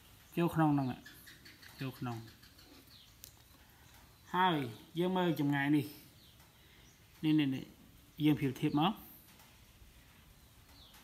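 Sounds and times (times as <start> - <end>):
faint bird chirps: 0.0 - 9.2, 10.0 - 11.0.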